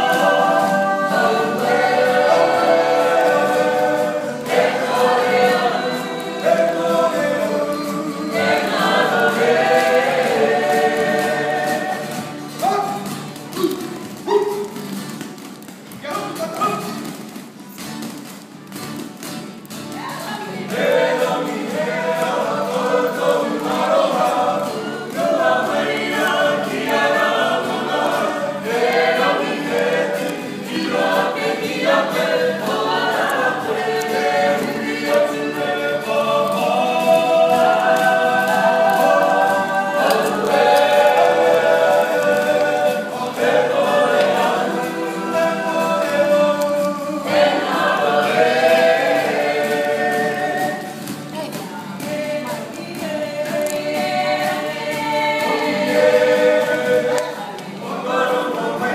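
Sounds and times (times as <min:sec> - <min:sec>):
group singing in chorus: 0:00.0 - 0:14.8, 0:20.3 - 0:58.9
guitar: 0:00.0 - 0:58.9.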